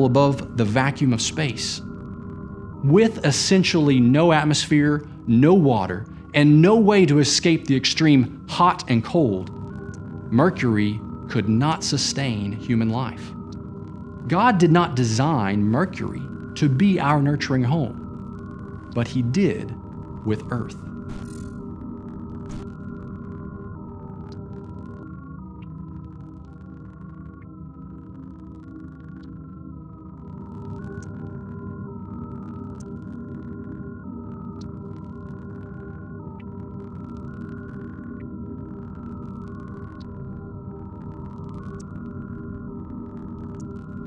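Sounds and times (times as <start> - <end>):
low electronic drone: 0.0 - 44.0
low synthesizer hum: 0.0 - 44.0
sustained synthesizer tones: 0.0 - 44.0.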